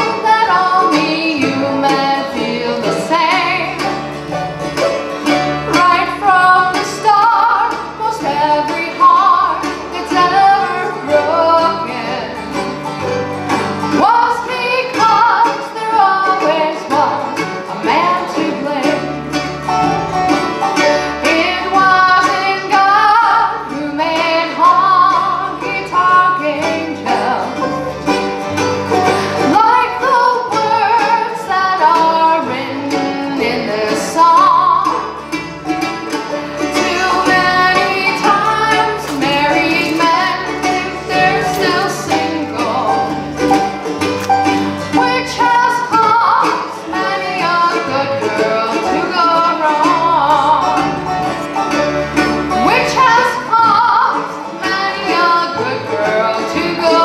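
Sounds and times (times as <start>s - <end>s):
woman singing: 0.0s - 4.0s, 5.7s - 12.7s, 14.0s - 19.4s, 21.1s - 27.8s, 29.4s - 35.2s, 36.7s - 43.3s, 44.9s - 51.0s, 52.6s - 57.0s
acoustic guitar: 0.0s - 57.0s
banjo: 0.0s - 57.0s
bluegrass band playing: 0.0s - 57.0s
mandolin: 0.0s - 57.0s
upright bass: 0.0s - 57.0s.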